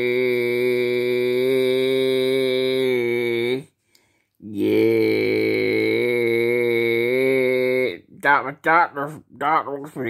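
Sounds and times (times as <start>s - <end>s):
man holding long low vowel: 0.0s - 3.7s, 4.4s - 8.0s.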